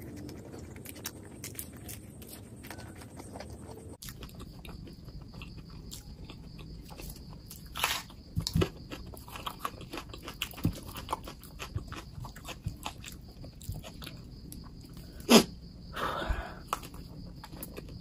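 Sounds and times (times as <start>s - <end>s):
chewing crispy food: 0.0s - 15.2s, 16.6s - 18.0s.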